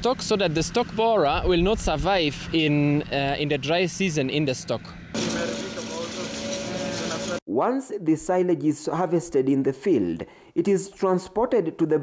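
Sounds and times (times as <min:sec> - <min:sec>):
engine hum: 0:00.0 - 0:07.4.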